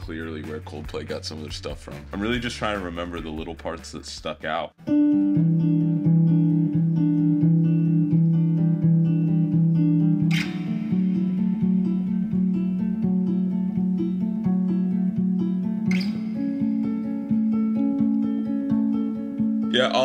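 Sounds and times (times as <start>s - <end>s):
clean electric guitar picking: 4.8s - 20.0s.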